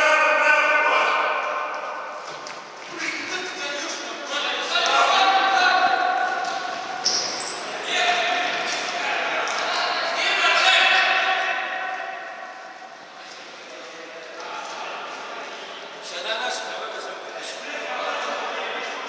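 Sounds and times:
players shouting in sports hall: 0.0 - 2.2, 2.9 - 13.2.

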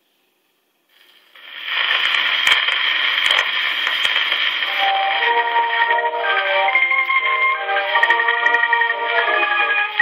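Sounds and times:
record surface hiss: 0.0 - 10.0
record clicks and pops: 0.9 - 7.2.

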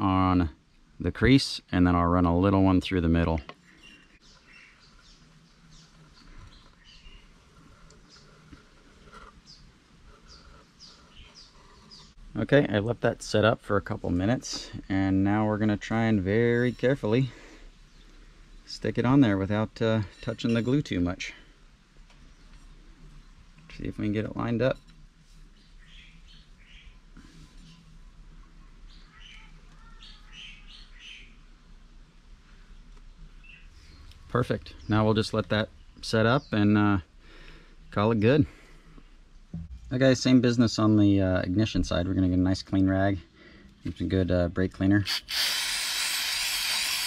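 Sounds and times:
birds chirping: 0.0 - 24.8, 25.4 - 27.9, 28.5 - 31.7, 32.4 - 44.5
aerosol can spraying hiss: 45.1 - 47.0.

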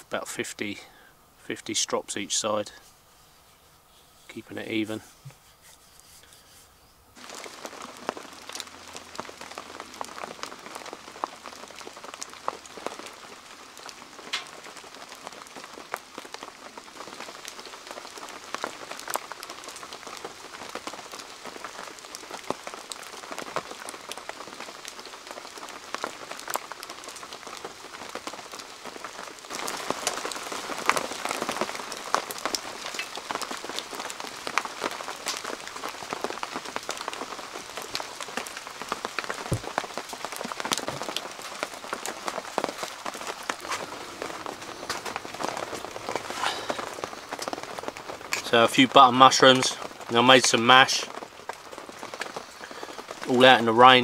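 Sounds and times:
rain drops pattering: 0.0 - 54.0.

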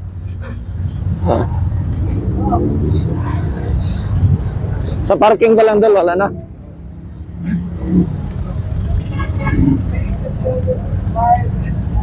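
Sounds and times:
steady low street rumble: 0.0 - 12.0.

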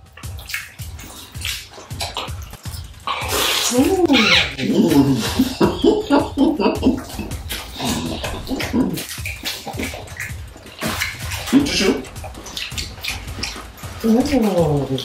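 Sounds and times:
chewing and mouth smacks: 0.0 - 14.0
person humming mm: 3.2 - 9.1.

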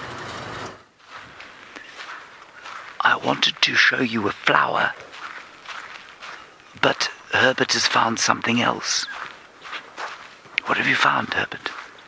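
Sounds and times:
vehicle engine and rattling: 0.0 - 1.8.

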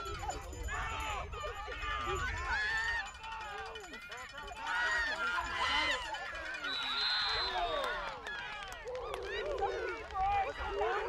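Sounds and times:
people shouting: 0.7 - 11.0.

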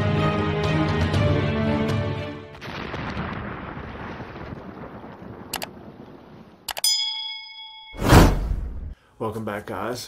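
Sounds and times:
bell ding: 6.8 - 8.3.

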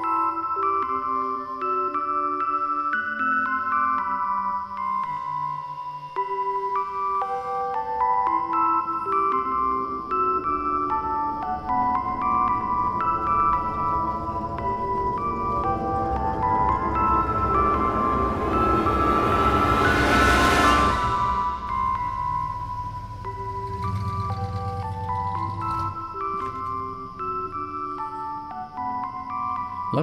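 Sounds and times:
ice cream truck chime jingle: 0.0 - 30.0
vehicle engine and tyre noise: 12.6 - 27.4.

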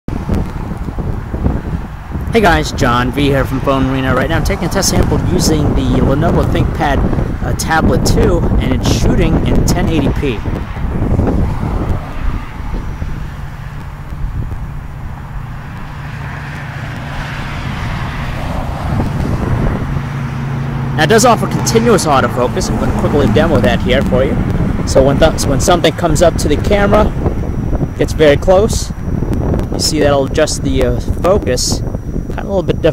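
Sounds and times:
road traffic: 0.1 - 32.9
wind buffeting microphone: 0.1 - 32.9.

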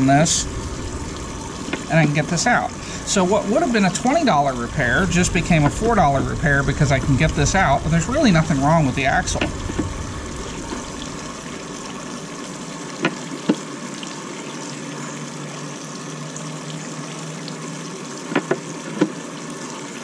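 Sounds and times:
water rushing: 0.0 - 20.0.

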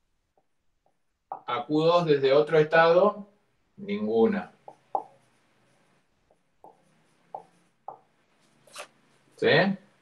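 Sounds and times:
marker scratching on whiteboard: 4.0 - 10.0.

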